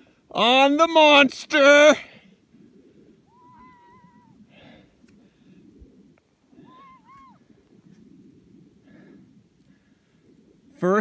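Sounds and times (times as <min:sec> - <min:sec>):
distant high-pitched wavering cry: 0:03.2 - 0:04.8, 0:06.5 - 0:07.6.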